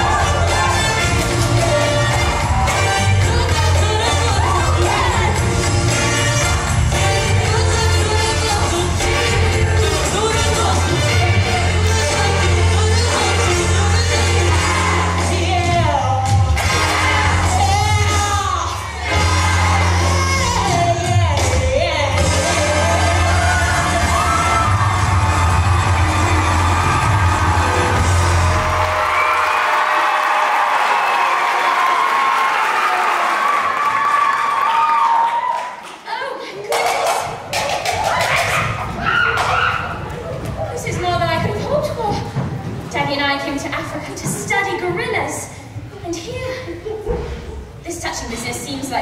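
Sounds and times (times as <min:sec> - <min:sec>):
audience clapping and cheering: 0:00.0 - 0:07.7, 0:22.4 - 0:41.3
music with heavy bass line: 0:00.0 - 0:15.3, 0:22.2 - 0:28.8.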